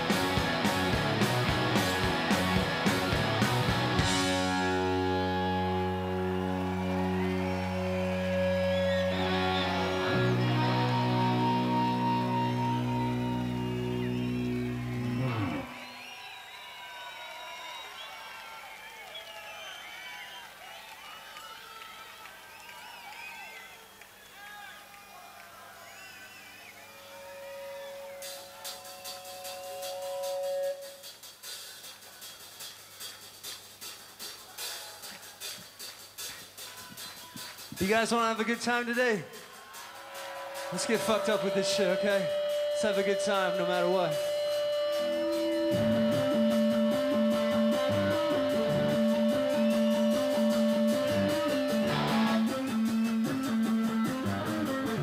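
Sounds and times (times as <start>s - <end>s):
electric guitars droning chords: 0.0s - 15.8s, 27.0s - 31.0s, 40.0s - 55.0s
crowd whistling: 0.0s - 21.6s, 22.2s - 31.2s, 34.2s - 55.0s
held tone from amplification: 40.0s - 53.5s.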